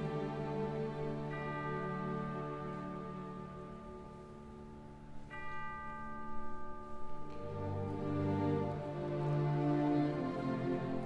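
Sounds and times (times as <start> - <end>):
orchestra sustained chord: 0.0 - 5.2, 6.4 - 11.0.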